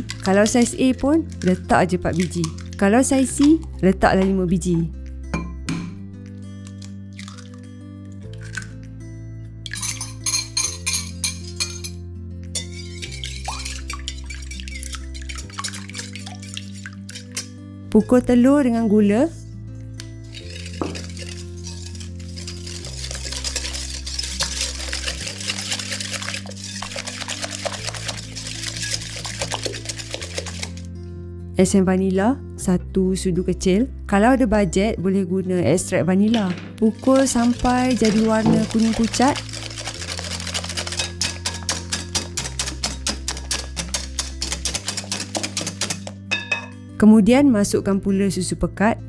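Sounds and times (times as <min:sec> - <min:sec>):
soft background music chords: 0:00.0 - 0:49.0
whisk clinking against glass bowl: 0:09.7 - 0:12.0, 0:12.6 - 0:17.5, 0:20.3 - 0:30.8, 0:37.0 - 0:46.7.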